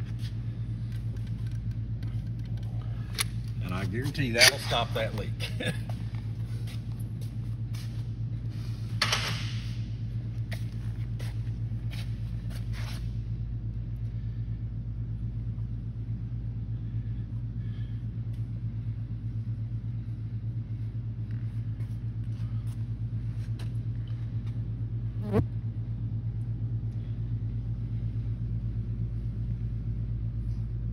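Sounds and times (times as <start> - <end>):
low mechanical hum: 0.0 - 30.9.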